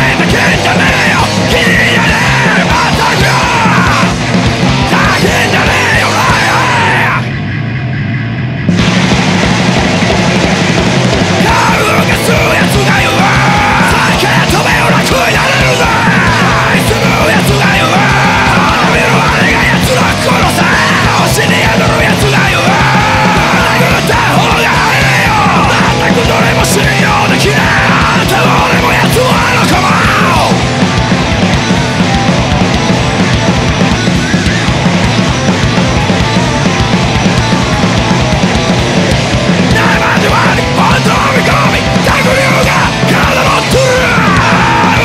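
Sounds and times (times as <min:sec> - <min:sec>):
rapid drum hits: 0:00.0 - 0:07.2, 0:08.7 - 0:45.0
shouted vocals: 0:00.0 - 0:07.3, 0:11.4 - 0:33.3, 0:39.2 - 0:45.0
loud fast punk band: 0:00.0 - 0:45.0.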